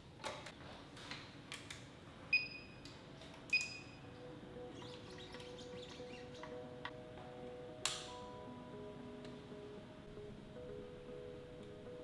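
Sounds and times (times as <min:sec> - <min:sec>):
soft background music: 0:02.6 - 0:12.0.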